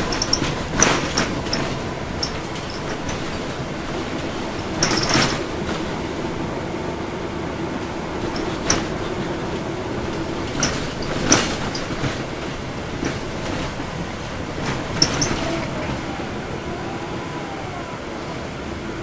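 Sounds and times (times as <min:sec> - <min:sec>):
bus diesel engine hum: 0:00.0 - 0:19.0
road noise: 0:00.0 - 0:19.0.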